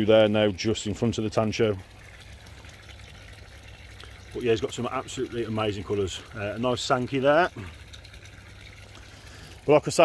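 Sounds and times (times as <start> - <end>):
pond water bubbling and trickling: 0.0 - 10.0.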